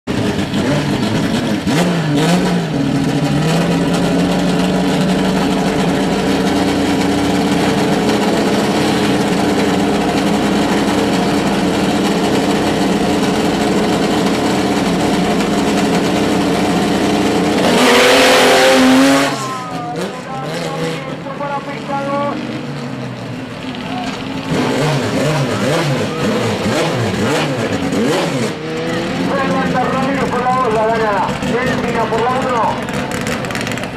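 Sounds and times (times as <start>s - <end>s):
drag race car engines: 0.0s - 33.9s.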